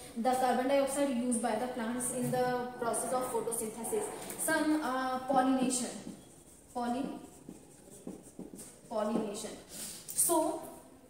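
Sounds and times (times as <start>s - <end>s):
marker writing on whiteboard: 1.3s - 9.7s.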